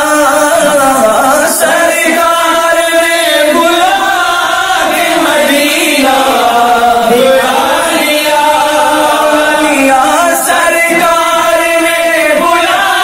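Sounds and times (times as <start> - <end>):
man singing devotional song: 0.0 - 13.0.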